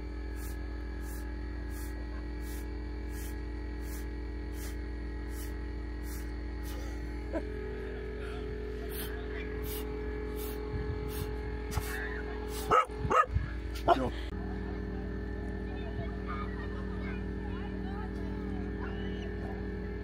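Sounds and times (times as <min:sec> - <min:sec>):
steady hum: 0:00.0 - 0:20.0
dog barking: 0:12.7 - 0:13.3.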